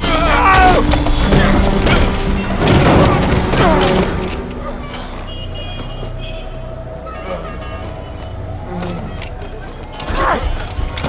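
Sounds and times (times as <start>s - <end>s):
dramatic score music: 0.0s - 11.0s
heavy booms and crashing impacts: 0.8s - 4.6s.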